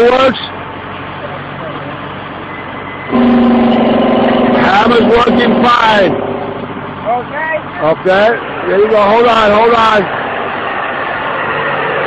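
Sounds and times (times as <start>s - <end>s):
drill machinery humming and rushing: 3.1s - 6.8s.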